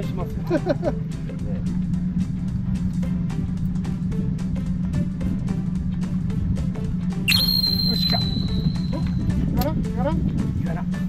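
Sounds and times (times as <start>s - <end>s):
background music with beat: 0.0s - 11.0s
high whistle-like tone: 7.3s - 9.4s.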